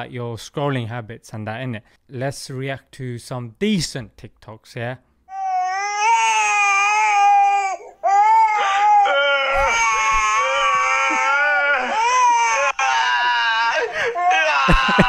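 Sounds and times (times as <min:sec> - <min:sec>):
baby wailing: 0:05.3 - 0:15.0.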